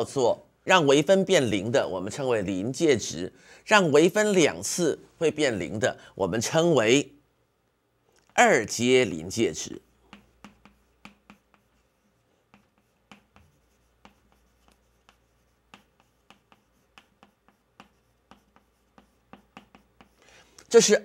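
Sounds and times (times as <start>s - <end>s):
chalk tapping and scratching: 9.0s - 20.4s.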